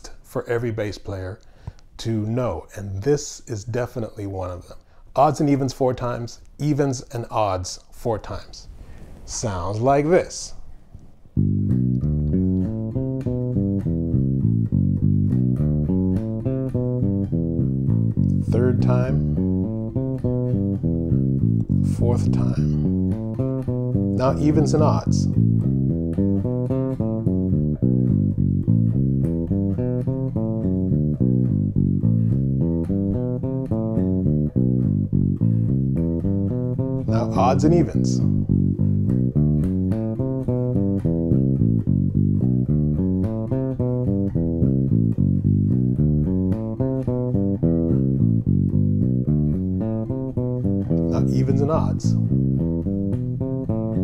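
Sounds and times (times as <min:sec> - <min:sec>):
electric bass notes: 0:11.2 - 0:54.0.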